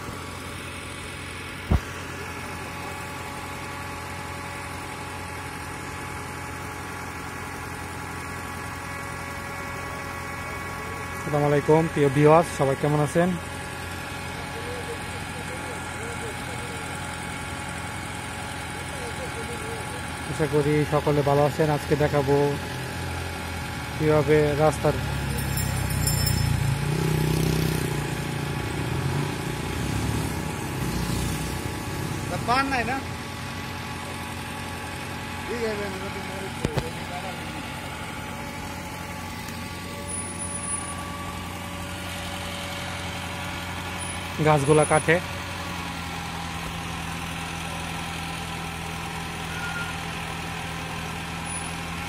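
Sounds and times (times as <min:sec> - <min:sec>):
truck engine idling: 0:00.0 - 0:52.0.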